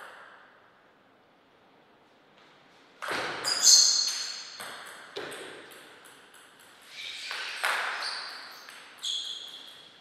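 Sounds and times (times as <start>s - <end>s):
table tennis ball hits: 3.0s - 10.0s.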